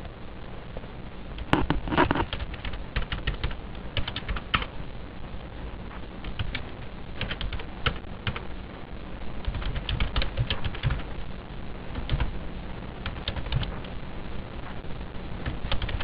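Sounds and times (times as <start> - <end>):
computer keyboard typing: 1.4 - 4.7, 6.2 - 8.4, 9.4 - 11.1, 12.0 - 12.4, 13.0 - 14.0, 15.4 - 16.0.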